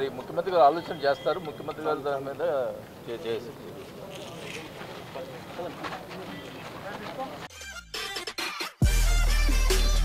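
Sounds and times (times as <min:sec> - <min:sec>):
crowd chatter: 0:00.0 - 0:07.5.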